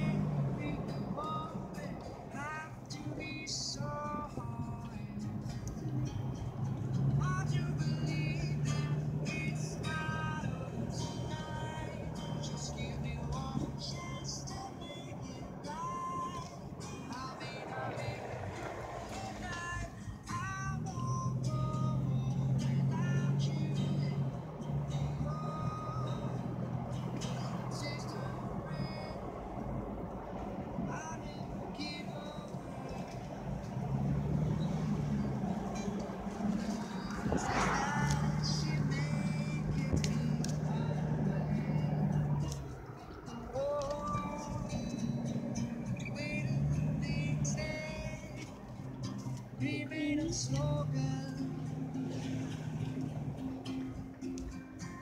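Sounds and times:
music with voice-like notes: 0.0 - 29.6, 30.8 - 55.0
car driving drone: 0.0 - 55.0.

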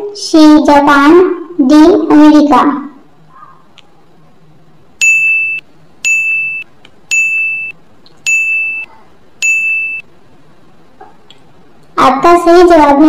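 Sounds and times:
high electronic beeps: 5.0 - 10.1.

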